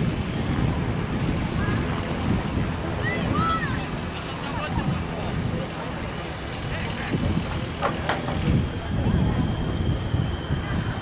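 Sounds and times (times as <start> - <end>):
distant voices: 0.0 - 11.0
wind on microphone: 0.0 - 11.0
thin high steady tone: 2.9 - 11.0.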